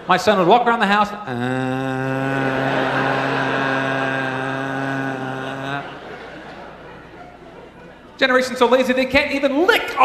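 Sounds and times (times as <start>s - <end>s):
man droning uhhh: 1.3s - 6.2s.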